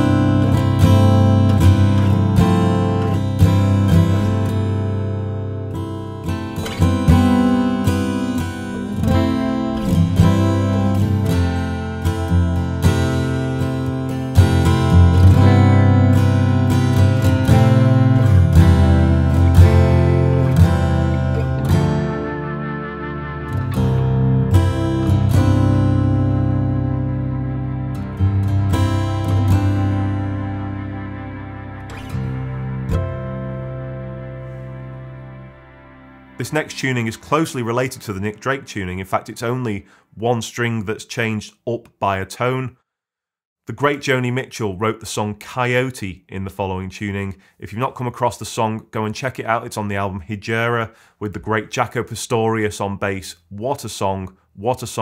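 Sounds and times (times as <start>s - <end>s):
acoustic guitar fingerpicked: 0.0s - 38.3s.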